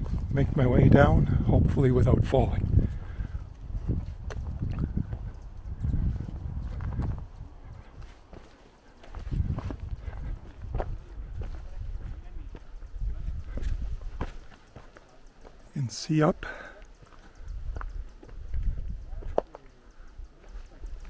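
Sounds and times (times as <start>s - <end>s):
wind rumbling on microphone: 0.0s - 14.7s, 16.9s - 21.0s
footsteps on dirt trail: 0.0s - 21.0s.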